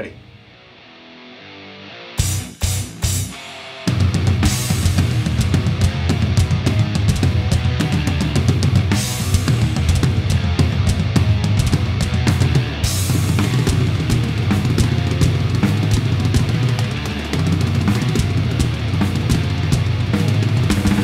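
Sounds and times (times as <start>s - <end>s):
heavy metal music: 0.0s - 21.0s
drum kit played hard: 2.2s - 21.0s.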